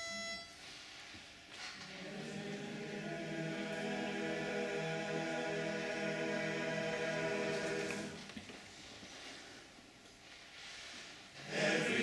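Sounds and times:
men's barbershop chorus singing: 1.8 - 8.3, 11.4 - 12.0.

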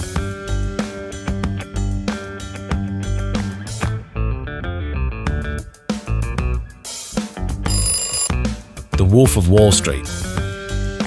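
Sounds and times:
plucked bass and guitar music: 0.0 - 6.7
bright ringing alarm: 7.7 - 8.3.

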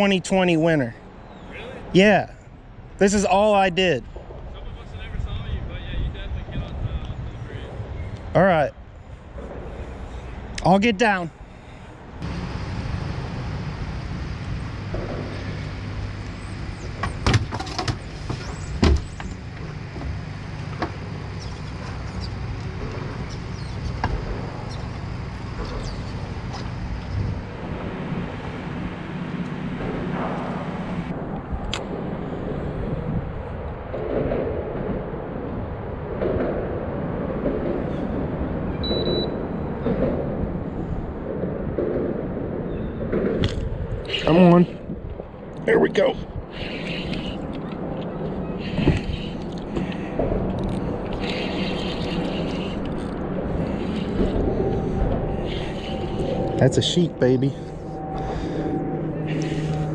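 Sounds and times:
steady low hum: 0.0 - 59.9
traffic rumble on bridge overhead: 0.0 - 59.9
fishing reel whirring: 50.6 - 56.7.

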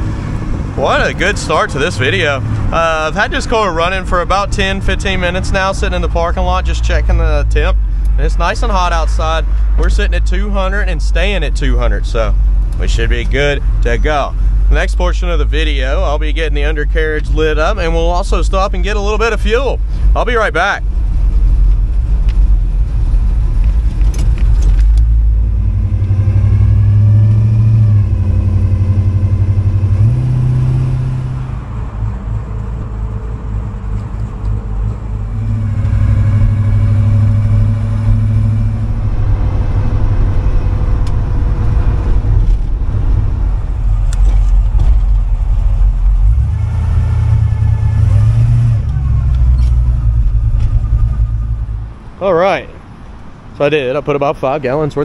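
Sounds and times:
car exhaust rumble: 0.0 - 55.0.

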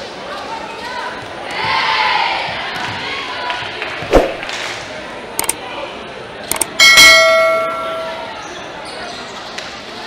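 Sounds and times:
quick clicks: 5.4 - 5.6, 6.5 - 6.7
bright bell ding: 6.8 - 8.4.

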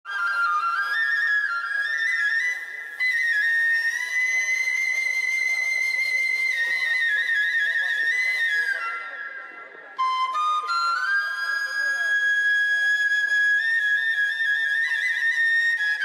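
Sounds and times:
flute playing slow melody: 0.1 - 9.2, 10.0 - 16.0.

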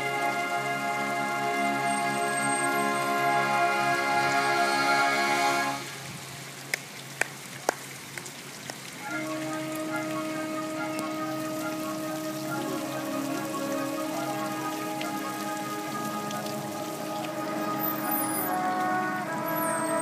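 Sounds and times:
marching band sustained chords: 0.0 - 6.2, 9.0 - 20.0.

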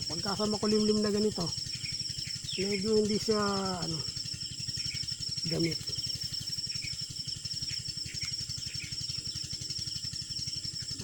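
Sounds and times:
faint bird chirps: 0.0 - 11.0
insect trilling: 0.0 - 11.0
low pulsing throb: 0.0 - 11.0.

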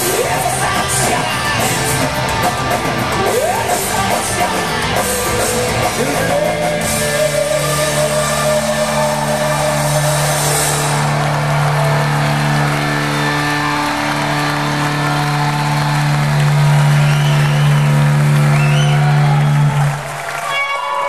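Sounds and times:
rock band droning guitar chord: 0.0 - 19.6
crowd whistles: 8.0 - 21.0.

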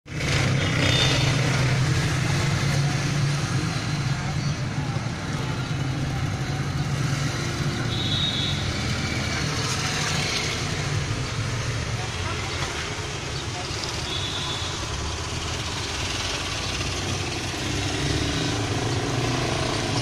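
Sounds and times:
vehicle engine humming: 0.1 - 20.0.

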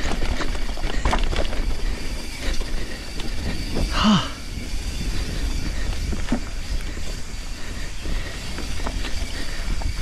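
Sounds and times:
bike chain and frame rattling: 0.0 - 10.0
bike tyres rumbling over dirt: 0.0 - 10.0.

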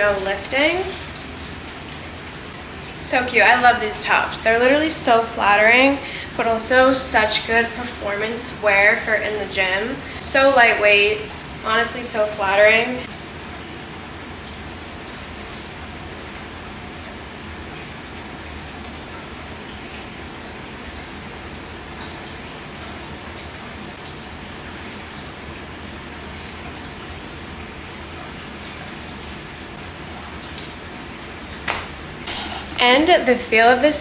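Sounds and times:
fan humming: 0.0 - 34.0.

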